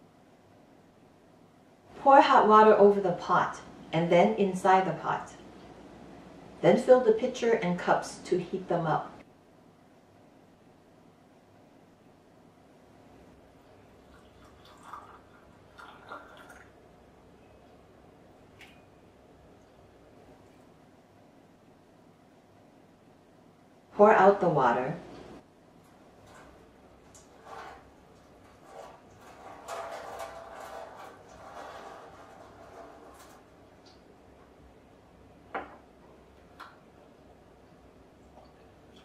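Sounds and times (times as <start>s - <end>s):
water pouring into glass pitcher: 13.7s - 16.8s.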